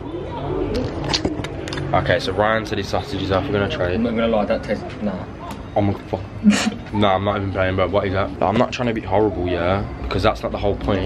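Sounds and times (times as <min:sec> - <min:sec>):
low indistinct voices: 0:00.0 - 0:11.0.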